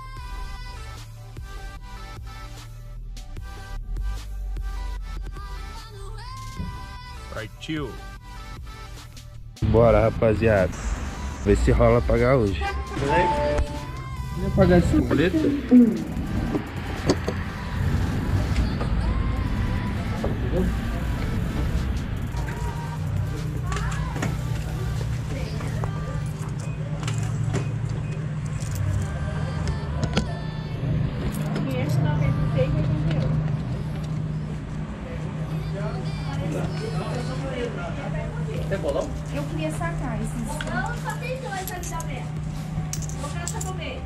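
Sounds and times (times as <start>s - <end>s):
steady low hum: 8.0s - 44.0s
indistinct background voices: 9.6s - 44.0s.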